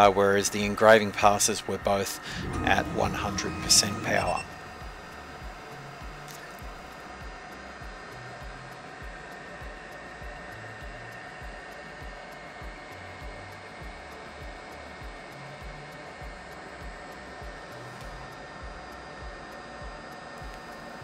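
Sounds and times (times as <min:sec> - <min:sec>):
thin steady tone: 0:02.2 - 0:05.4
laser engraver fan whooshing: 0:02.2 - 0:05.6.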